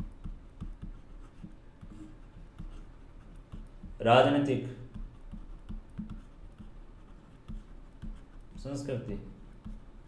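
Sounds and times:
stylus tapping on tablet: 0.0s - 4.1s, 4.8s - 10.0s.

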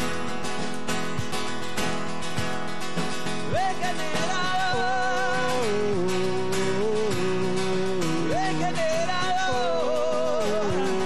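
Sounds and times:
drums: 0.0s - 11.0s
electric guitar: 0.0s - 11.0s
man singing: 3.5s - 11.0s.

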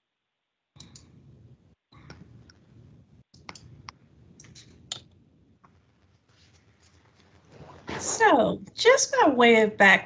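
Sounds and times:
computer clicks: 0.8s - 1.2s.

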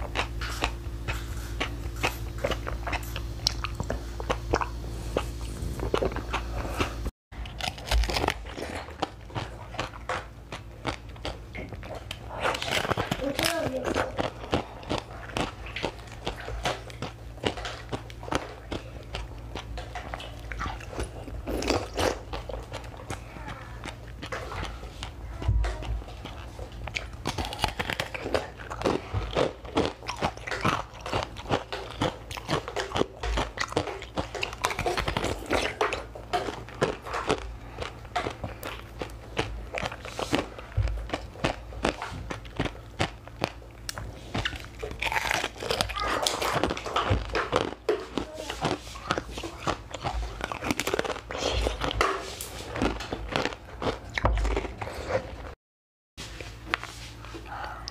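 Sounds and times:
crunching bites and chewing ice: 0.0s - 55.6s.

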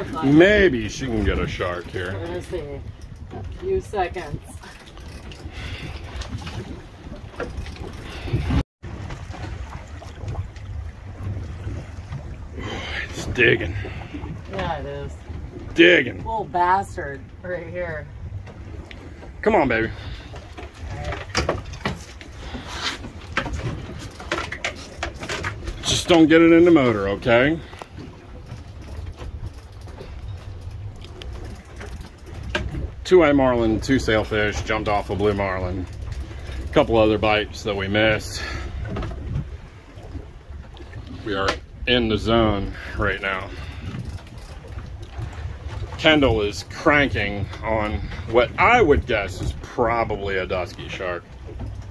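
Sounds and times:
wind buffeting microphone: 0.0s - 24.9s, 25.5s - 50.6s
outboard motor running: 0.0s - 51.9s
water splashing: 0.0s - 51.9s.

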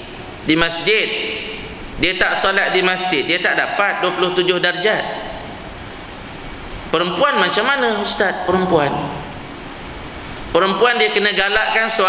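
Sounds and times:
room noise hiss: 0.0s - 12.0s
man speaking: 0.4s - 5.4s, 6.9s - 9.4s, 10.5s - 12.0s.

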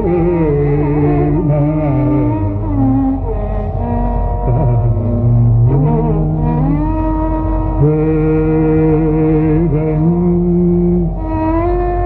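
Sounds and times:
classical vocal melody: 0.0s - 12.0s
steady drone: 0.0s - 12.0s.

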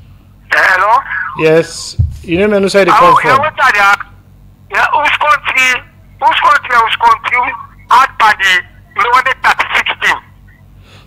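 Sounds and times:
person talking over telephone: 0.5s - 1.8s, 2.4s - 4.1s, 4.7s - 10.3s.

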